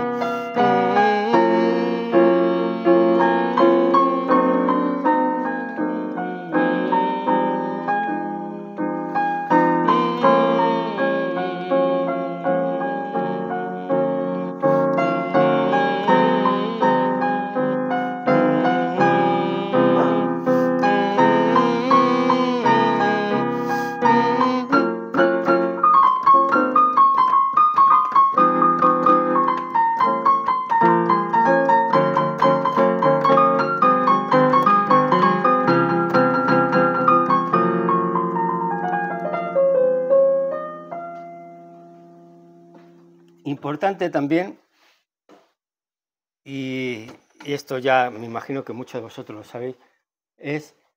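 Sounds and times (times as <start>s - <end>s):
piano playing: 0.0s - 43.9s.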